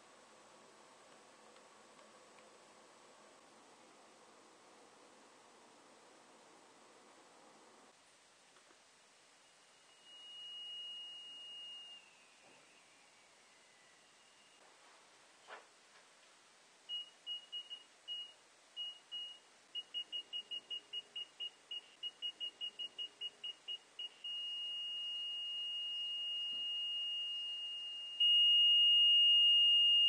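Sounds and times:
high-pitched buzzer beeping: 0:16.9 - 0:30.0.

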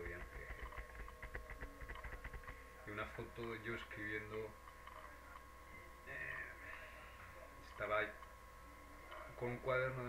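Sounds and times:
rapid faint clicks and crackle: 0:00.0 - 0:04.0, 0:04.6 - 0:05.5
electrical hum: 0:00.0 - 0:10.0.

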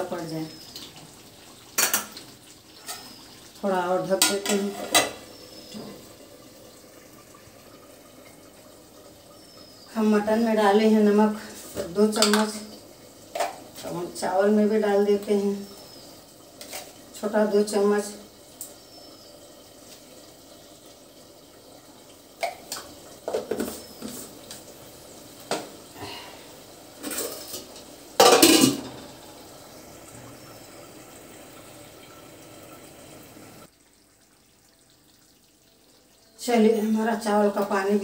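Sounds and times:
pots and lids clattering: 0:01.8 - 0:02.2, 0:02.8 - 0:03.2, 0:04.1 - 0:06.1, 0:11.7 - 0:12.7, 0:13.3 - 0:13.9, 0:16.6 - 0:17.0, 0:22.4 - 0:24.6, 0:25.4 - 0:25.8, 0:27.0 - 0:29.2.

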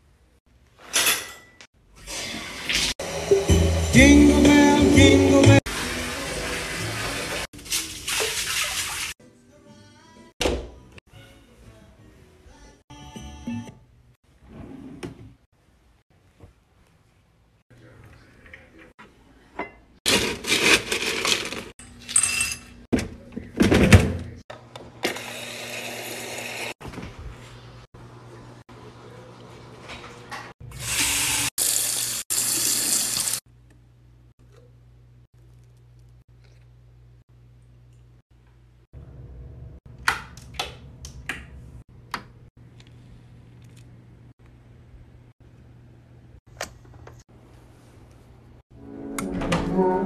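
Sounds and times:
faucet running into sink: 0:30.9 - 0:33.4.

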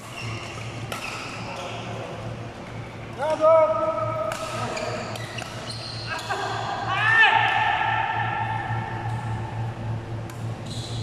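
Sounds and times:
racket hitting shuttlecock: 0:00.0 - 0:01.4, 0:04.2 - 0:05.7
shoes squeaking on sports floor: 0:00.0 - 0:02.0, 0:04.6 - 0:06.4, 0:10.6 - 0:11.0.

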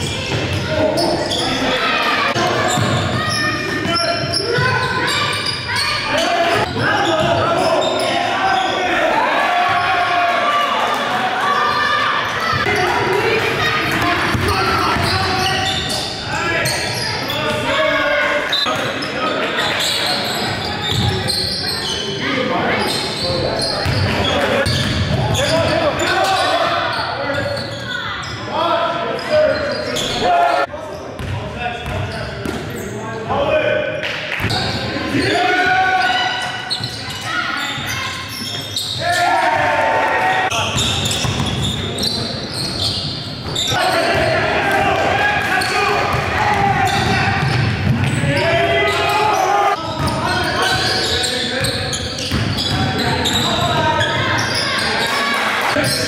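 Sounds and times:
players calling out: 0:00.0 - 0:30.7, 0:34.5 - 0:56.0.

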